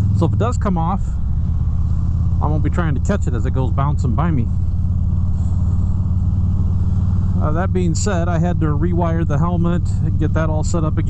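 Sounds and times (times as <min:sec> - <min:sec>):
motorcycle engine droning: 0:00.0 - 0:11.0
wind and road noise: 0:00.0 - 0:11.0.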